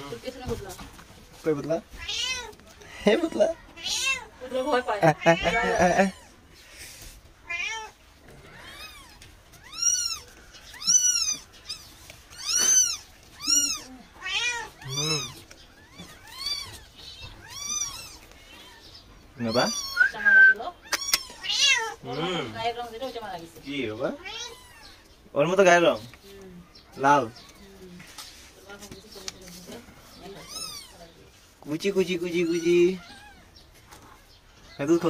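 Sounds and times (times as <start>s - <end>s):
kittens mewing: 1.9s - 25.3s, 30.2s - 31.2s, 32.1s - 34.9s.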